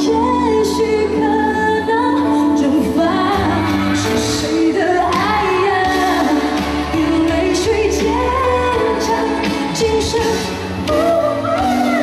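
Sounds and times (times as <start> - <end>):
instrumental backing with bass: 0.0 - 12.0
woman singing into microphone: 0.0 - 12.0.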